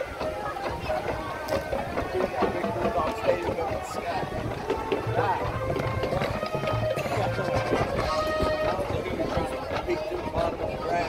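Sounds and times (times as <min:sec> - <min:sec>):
marching band playing: 0:00.0 - 0:11.0
spectators chatting: 0:00.0 - 0:11.0.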